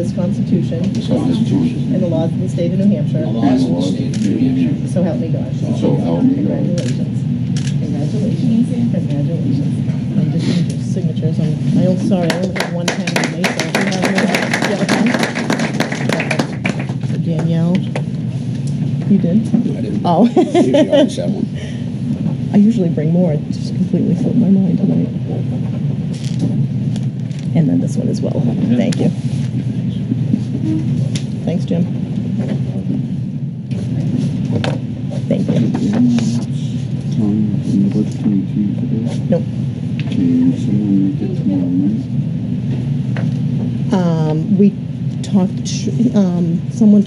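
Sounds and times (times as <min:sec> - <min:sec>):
indistinct voices: 0:00.0 - 0:18.0, 0:18.7 - 0:25.6, 0:27.3 - 0:42.1, 0:43.9 - 0:47.0
room noise rumble: 0:00.0 - 0:47.0.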